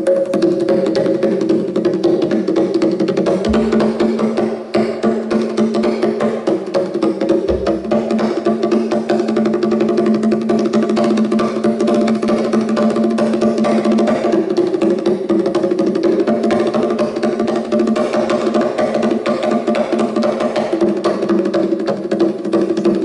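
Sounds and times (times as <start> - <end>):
fast hand drumming: 0.0 - 23.0
sustained low instrumental notes: 3.5 - 4.3, 7.5 - 8.4.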